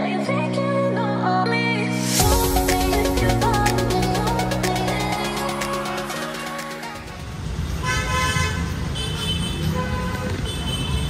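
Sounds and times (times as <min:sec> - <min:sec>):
road traffic rumble: 0:06.9 - 0:11.0
vehicle horn toots: 0:07.8 - 0:11.0.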